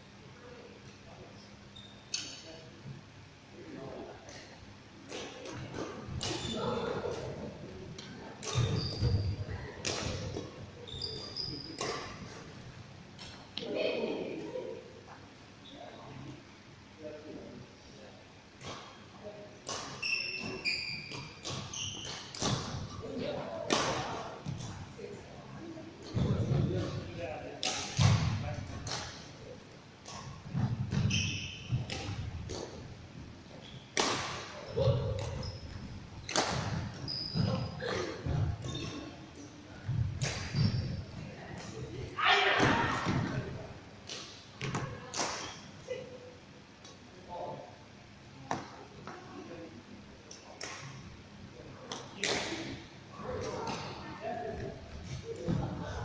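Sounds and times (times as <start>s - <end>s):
rackets hitting shuttlecocks: 34.0s - 35.4s.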